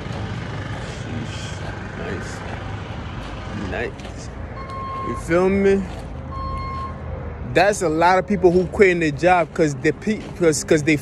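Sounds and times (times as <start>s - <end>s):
vehicle engine running: 0.0s - 7.0s.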